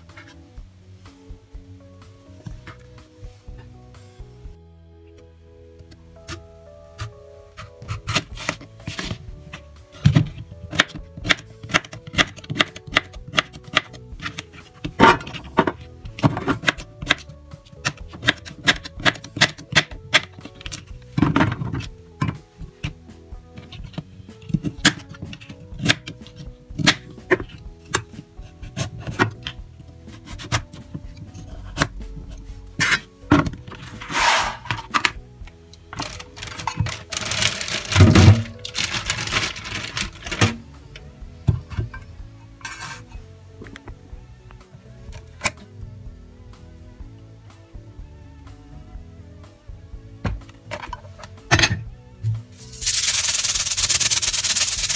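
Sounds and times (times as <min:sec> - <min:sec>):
soft background music: 0:00.0 - 0:54.9.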